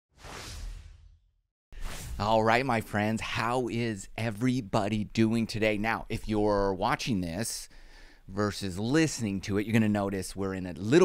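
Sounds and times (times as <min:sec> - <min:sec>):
whoosh sound effect: 0:00.1 - 0:02.2.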